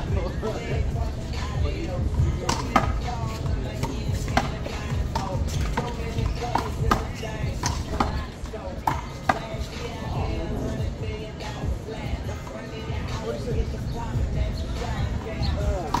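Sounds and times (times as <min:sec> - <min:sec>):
music: 0:00.0 - 0:16.0
voices: 0:00.0 - 0:16.0.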